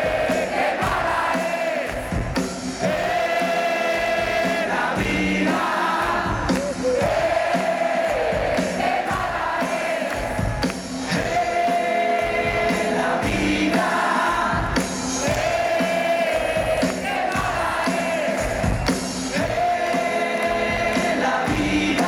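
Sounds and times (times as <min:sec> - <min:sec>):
crowd singing along: 0:00.0 - 0:22.0
live rock band playing: 0:00.1 - 0:22.0.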